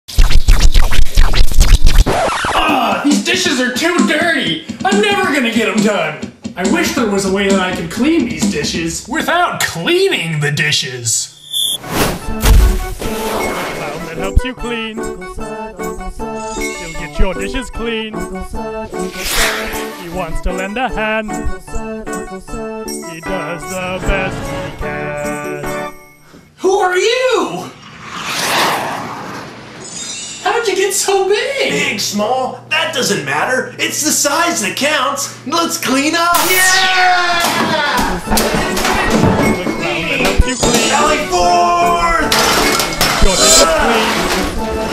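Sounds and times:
whoosh: 27.7 - 30.4.

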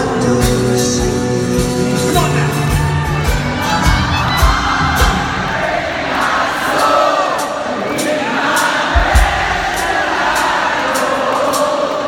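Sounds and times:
crowd cheering and singing along: 0.0 - 12.0
drum beats: 0.0 - 12.0
live band music: 0.0 - 12.0.

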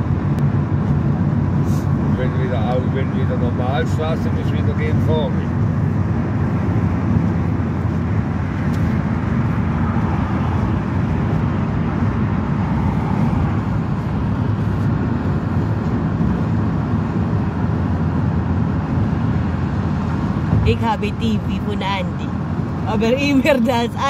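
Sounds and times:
vehicle road and engine noise: 0.0 - 24.0.

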